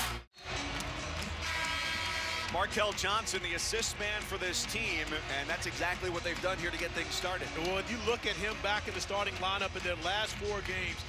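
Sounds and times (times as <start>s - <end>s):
arena crowd noise: 0.0s - 11.0s
music: 0.0s - 11.0s.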